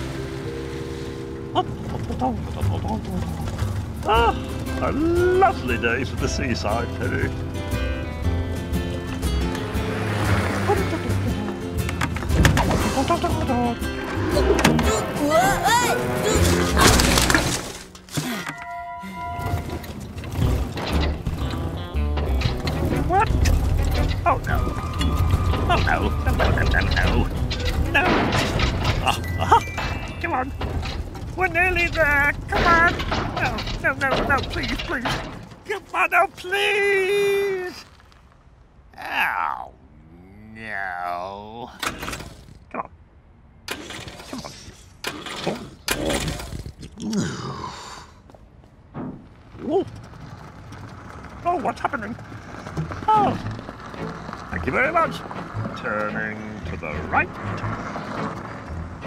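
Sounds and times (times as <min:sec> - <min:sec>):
engine spluttering: 0:00.0 - 0:07.4
cartoon background music: 0:04.1 - 0:17.2.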